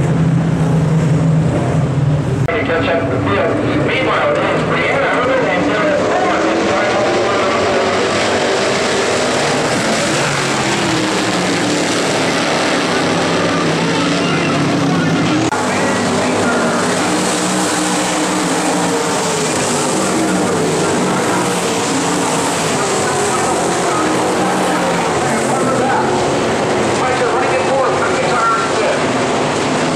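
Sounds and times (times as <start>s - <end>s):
race car engines passing: 0.0s - 29.9s.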